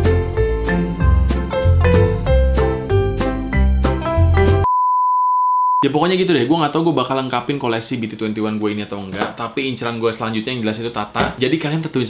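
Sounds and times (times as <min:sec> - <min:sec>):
steady electronic beep: 0:04.6 - 0:05.8
man speaking: 0:05.8 - 0:12.0.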